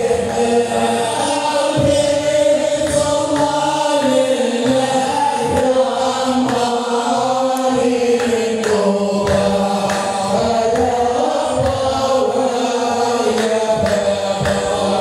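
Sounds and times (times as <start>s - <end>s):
group chanting: 0.0s - 15.0s
percussive beat: 0.0s - 15.0s.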